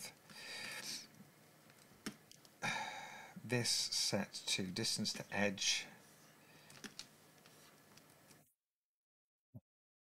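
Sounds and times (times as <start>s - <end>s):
low room hiss: 0.0s - 8.5s
computer keyboard clicks: 6.7s - 7.1s.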